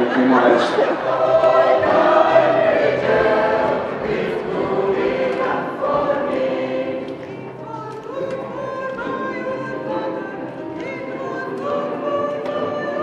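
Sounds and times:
mixed choir singing: 0.0 - 13.0.

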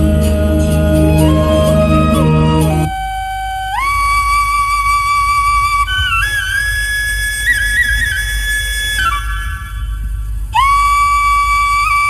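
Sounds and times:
deep steady hum: 0.0 - 6.8
flute melody: 0.2 - 9.6, 10.6 - 12.0.

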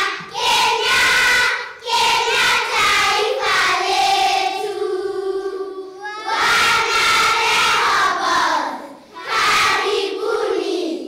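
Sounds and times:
children's choir singing: 0.0 - 11.0.

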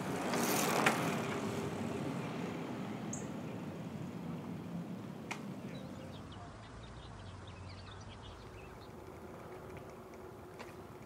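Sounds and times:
bicycle tyres rushing: 0.0 - 2.9.

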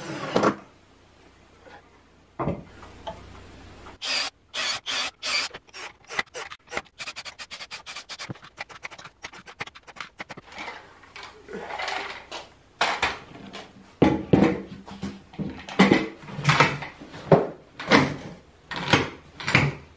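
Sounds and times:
cordless drill driving screws: 4.0 - 10.3
small clicks and rubbing: 5.5 - 11.4.

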